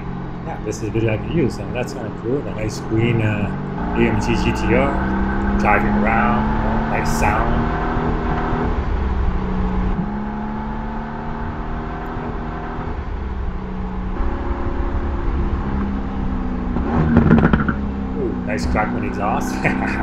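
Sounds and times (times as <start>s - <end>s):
car engine running: 0.0s - 20.0s
exhaust crackles: 0.0s - 20.0s.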